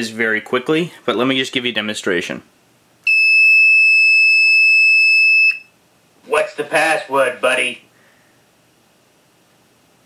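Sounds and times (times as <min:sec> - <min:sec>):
high-pitched buzzer tone: 0:03.1 - 0:05.7.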